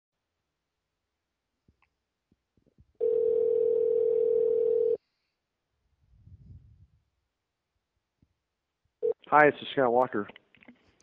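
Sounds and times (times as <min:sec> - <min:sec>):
telephone ringback tone: 0:03.0 - 0:05.0.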